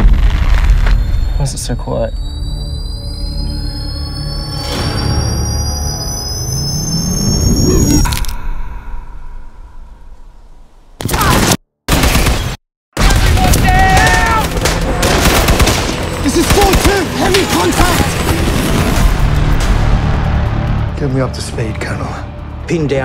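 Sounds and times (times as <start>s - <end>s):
boom: 0.0s - 1.5s
loud gunfire: 11.3s - 19.0s.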